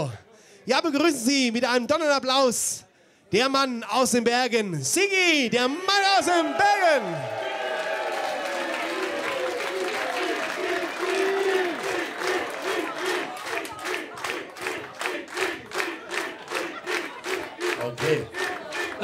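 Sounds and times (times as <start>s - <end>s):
crowd shouting and cheering: 5.6s - 19.0s
rhythmic clapping: 8.4s - 19.0s.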